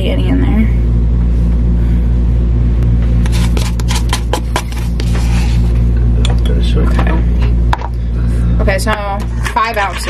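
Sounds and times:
steady low hum: 0.0s - 10.0s
spoon scraping ice cream carton: 3.2s - 5.8s.

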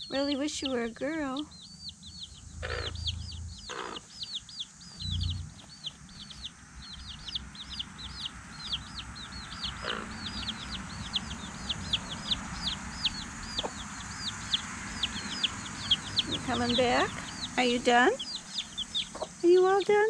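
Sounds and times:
baby chicks peeping: 0.0s - 20.0s
hen clucking: 0.0s - 20.0s.

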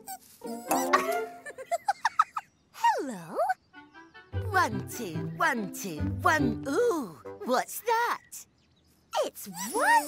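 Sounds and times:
cartoon music: 0.4s - 1.6s
cute creature voice: 2.8s - 3.6s, 9.2s - 10.0s.

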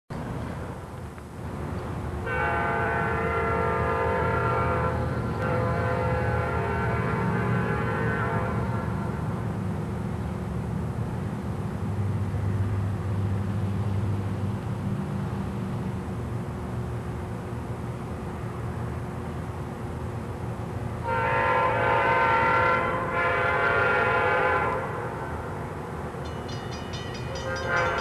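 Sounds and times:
locomotive air horn blasts: 2.2s - 9.2s, 21.0s - 25.6s, 27.3s - 28.0s.

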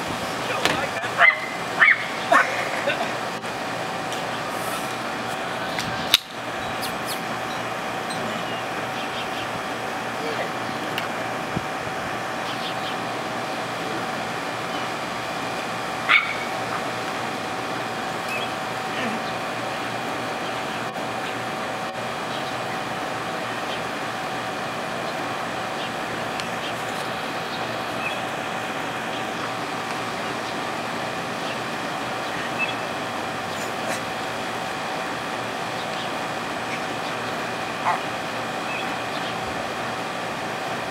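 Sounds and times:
machine-like hum: 0.0s - 40.9s.

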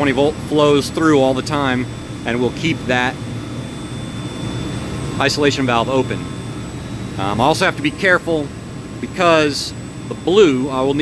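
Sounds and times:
chiller machinery droning: 0.0s - 11.0s
faint high whine: 0.0s - 11.0s.

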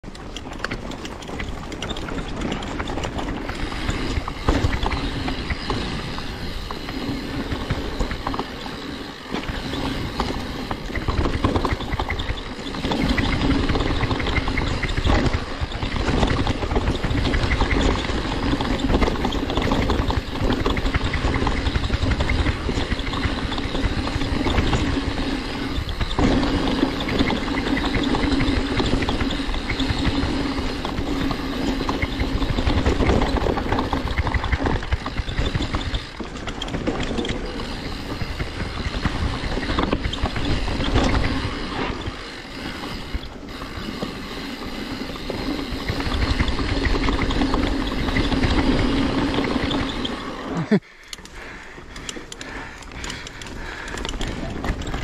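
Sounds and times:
bike frame and chain rattling: 0.0s - 55.0s
bike tyres rolling on dirt: 0.0s - 55.0s.

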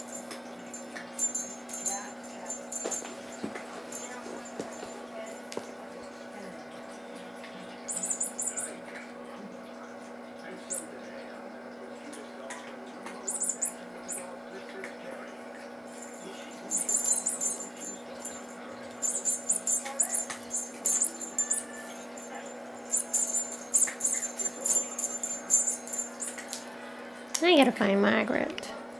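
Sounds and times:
cat toy rustling and jingling: 0.0s - 6.2s, 6.9s - 8.8s, 13.0s - 14.4s, 15.9s - 26.6s
steady low hum: 0.0s - 28.9s.

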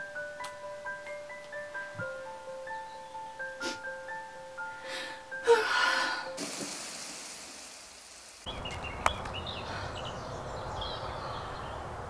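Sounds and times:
birds chirping: 2.1s - 3.6s, 8.5s - 12.0s
person gasping: 4.8s - 6.4s, 9.6s - 10.1s.

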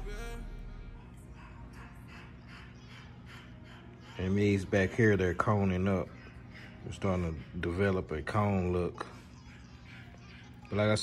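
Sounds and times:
dog breathing quickly: 1.0s - 11.0s.

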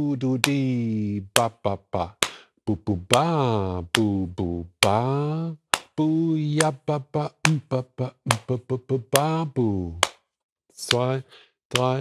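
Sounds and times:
man scat singing: 0.0s - 10.1s, 10.8s - 12.0s.

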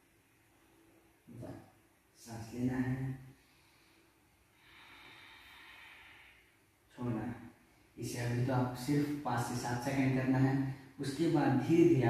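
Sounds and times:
person breathing slowly: 3.3s - 6.6s.

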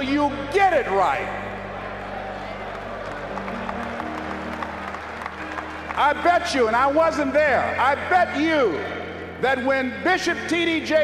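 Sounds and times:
soft music of held notes: 0.0s - 11.0s
audience applauding: 1.6s - 7.4s.

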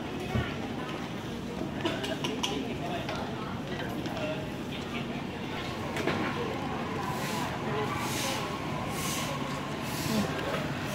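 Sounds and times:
people talking: 0.0s - 10.9s.

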